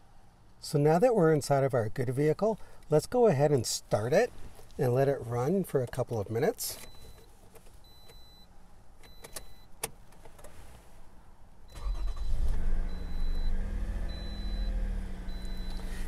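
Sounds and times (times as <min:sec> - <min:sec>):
car engine starting and idling: 0:11.7 - 0:16.0.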